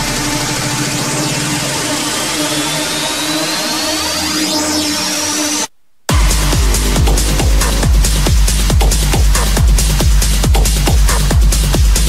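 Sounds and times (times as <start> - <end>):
rising synth sweep: 2.9 - 10.3
held synth note: 6.1 - 9.9
hard techno music: 6.1 - 12.0.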